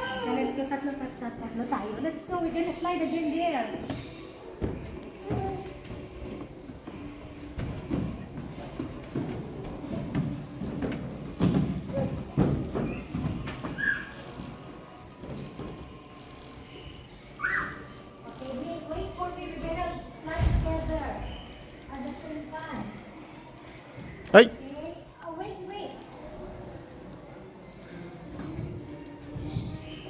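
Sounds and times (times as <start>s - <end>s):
thumps of people climbing: 3.8s - 14.6s.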